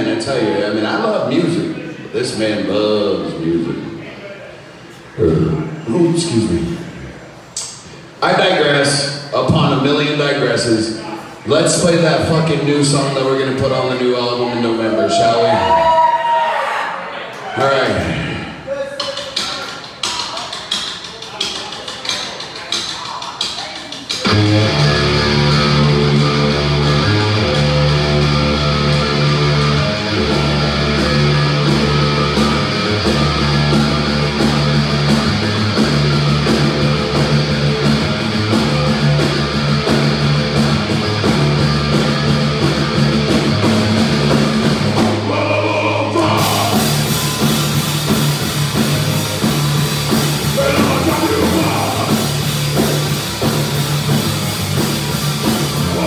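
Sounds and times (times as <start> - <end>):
drum kit: 19.0 - 56.0
distorted guitars and bass riff: 24.2 - 56.0.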